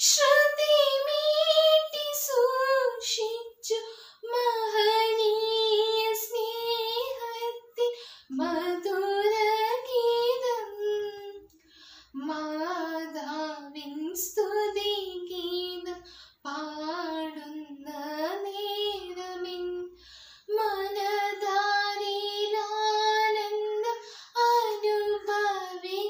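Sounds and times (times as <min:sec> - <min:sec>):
girl singing unaccompanied: 0:00.0 - 0:11.5, 0:12.1 - 0:26.0.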